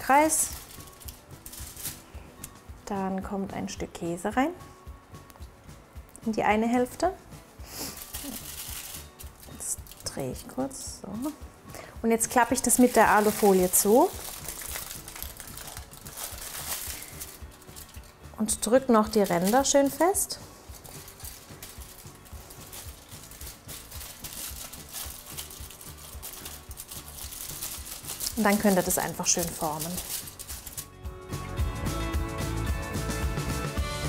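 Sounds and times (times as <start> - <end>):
aluminium foil crinkling: 0.0 - 2.1, 7.8 - 10.5, 12.2 - 31.0
faint background music: 0.0 - 34.0.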